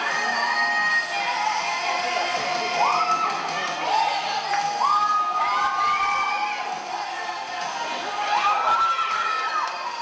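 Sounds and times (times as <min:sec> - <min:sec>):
audience cheering and shouting: 0:00.0 - 0:10.0.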